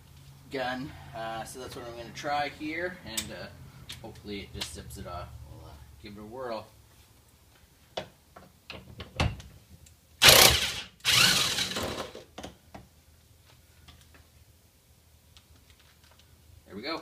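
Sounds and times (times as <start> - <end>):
impact wrench hammering: 10.2 - 12.2.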